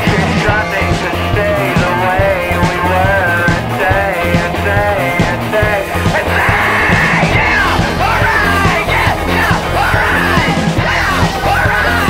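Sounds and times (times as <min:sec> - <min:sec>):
drums: 0:00.0 - 0:12.0
electric bass: 0:00.0 - 0:12.0.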